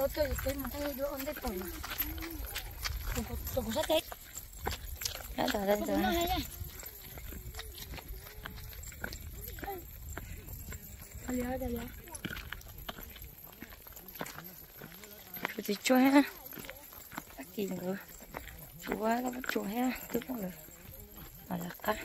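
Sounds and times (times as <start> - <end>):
woman speaking: 0.0 - 4.2, 5.2 - 6.6, 11.2 - 12.3, 15.4 - 18.2, 18.8 - 20.6, 21.4 - 22.0.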